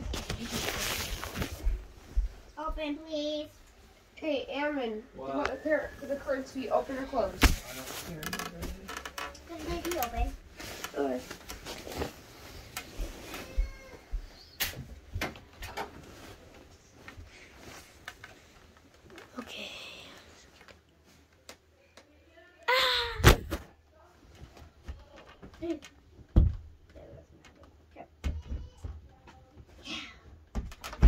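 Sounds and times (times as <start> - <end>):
fabric rubbing on microphone: 0.0 - 2.5, 9.5 - 13.8.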